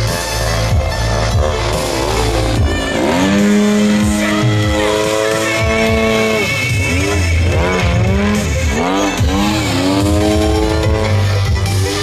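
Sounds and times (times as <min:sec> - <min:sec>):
model airplane engine revving: 0:00.0 - 0:12.0.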